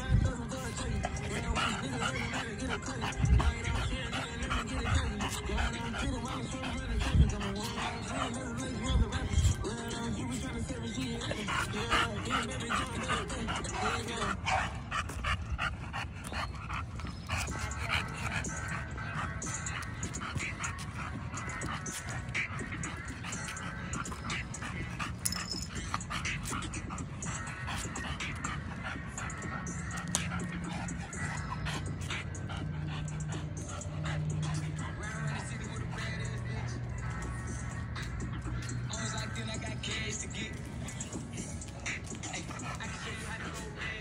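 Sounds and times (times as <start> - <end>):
dog panting: 0.0 - 44.0
rap music with bass line: 0.0 - 44.0.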